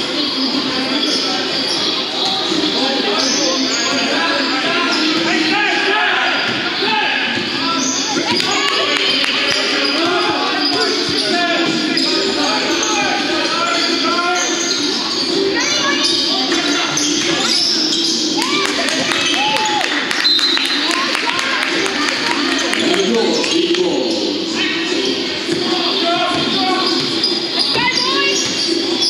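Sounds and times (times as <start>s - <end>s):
many voices talking: 0.0s - 29.0s.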